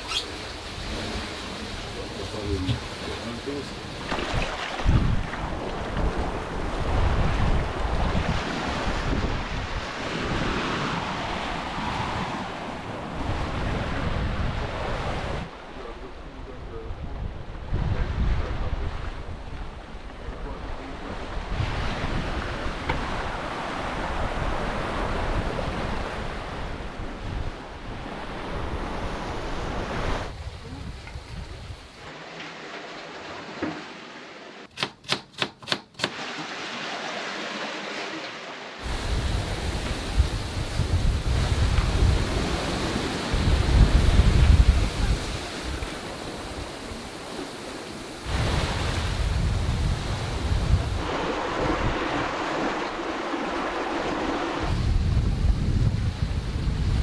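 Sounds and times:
water splashing along hull: 0.0 - 57.0
wind buffeting microphone: 4.2 - 15.6, 16.4 - 32.0, 38.8 - 57.0.

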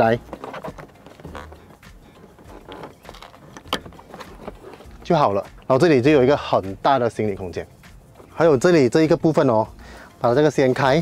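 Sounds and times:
car seat clicks and knocks: 0.0 - 5.0.

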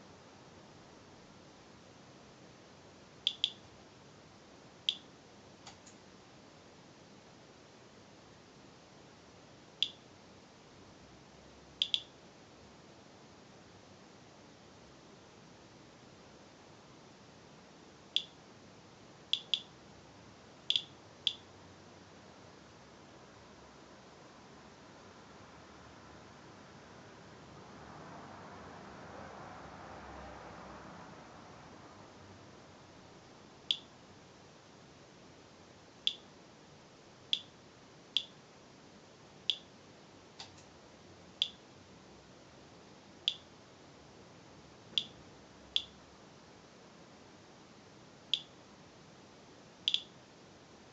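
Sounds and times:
geiger counter clicking: 3.3 - 3.7, 4.9 - 5.1, 9.8 - 10.0, 11.8 - 12.2, 18.2 - 18.4, 19.3 - 19.7, 20.7 - 21.5, 33.7 - 33.9, 36.1 - 36.3, 37.3 - 37.6, 38.2 - 38.4, 39.5 - 39.7, 41.4 - 41.6, 43.3 - 43.5, 45.0 - 45.2, 48.3 - 48.6, 49.9 - 50.2.

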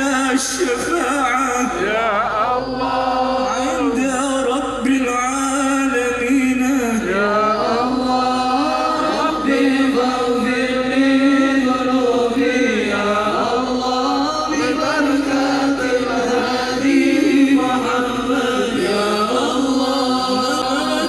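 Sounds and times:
many voices chanting devotional song: 0.0 - 21.0.

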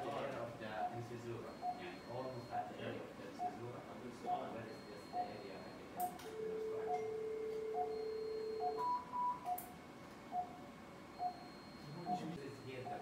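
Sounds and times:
patient monitor beeping: 0.0 - 13.0.

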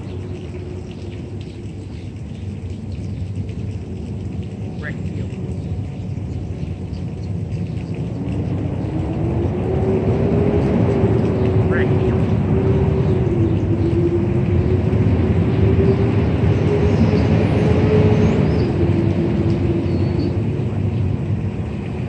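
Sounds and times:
vehicle engine rumbling: 0.0 - 22.0.

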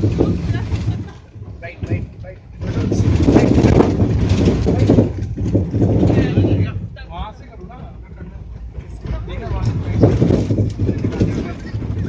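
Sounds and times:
engine and road rumble: 0.0 - 12.0.

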